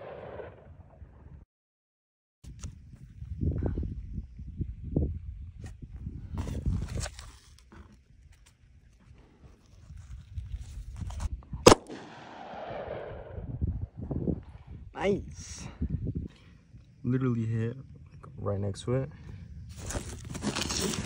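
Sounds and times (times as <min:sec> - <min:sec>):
gunshot with echo: 0:00.0 - 0:00.7, 0:11.7 - 0:13.5.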